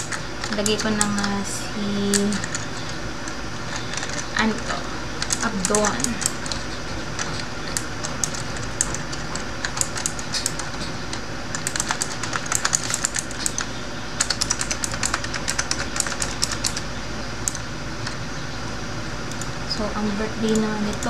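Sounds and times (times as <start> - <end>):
typing on computer keyboard: 0.0 - 1.4, 2.0 - 4.4, 5.2 - 18.2.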